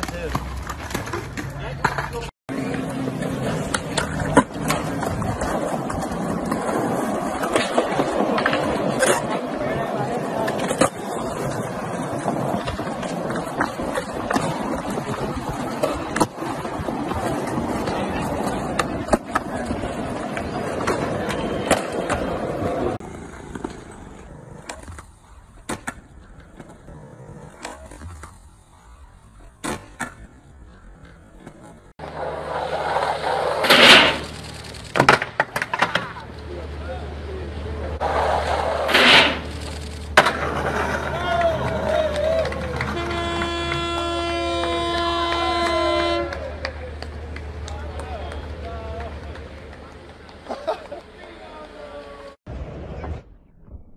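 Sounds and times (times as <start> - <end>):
skateboard clacks: 0.0 - 36.5, 38.0 - 52.3
skateboard wheels rolling on concrete: 0.0 - 53.7.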